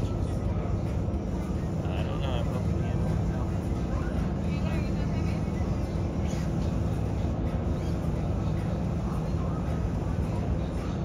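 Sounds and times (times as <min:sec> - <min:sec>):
faint indistinct voices: 0:00.0 - 0:11.0
low outdoor rumble: 0:00.0 - 0:11.0.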